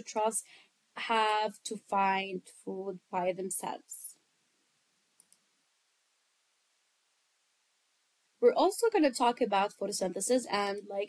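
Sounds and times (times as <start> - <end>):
faint mouse clicks: 5.2 - 5.5.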